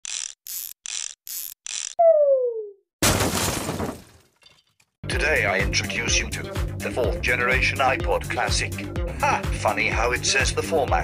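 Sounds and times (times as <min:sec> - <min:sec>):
ratchet screwdriver ratcheting: 0:00.0 - 0:02.0.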